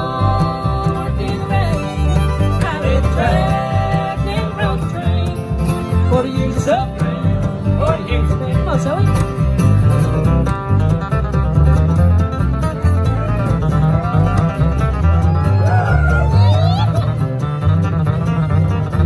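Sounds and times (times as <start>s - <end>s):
acoustic guitar: 0.0s - 19.0s
fiddle: 0.0s - 19.0s
mandolin: 0.0s - 19.0s
upright bass: 0.0s - 19.0s.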